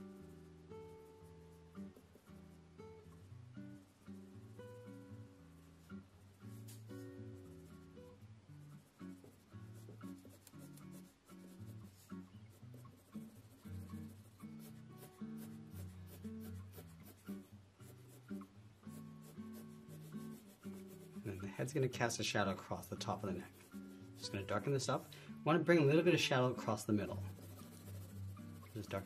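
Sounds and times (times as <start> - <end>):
soft background music: 0.0 - 29.0
pencil scratching on paper: 8.8 - 21.8, 23.1 - 24.7, 27.0 - 29.0.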